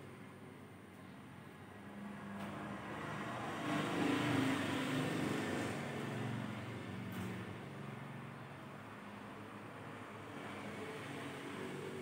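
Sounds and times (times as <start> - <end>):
road vehicle passing: 1.8 - 12.0.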